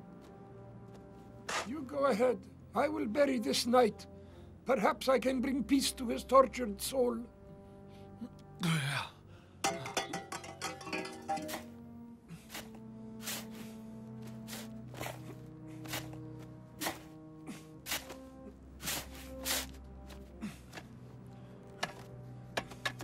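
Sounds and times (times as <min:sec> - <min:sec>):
background music with held notes: 0:00.0 - 0:23.0
shovel digging into sand: 0:12.5 - 0:13.7, 0:14.4 - 0:16.2, 0:16.8 - 0:17.1, 0:17.8 - 0:18.2, 0:18.8 - 0:19.8.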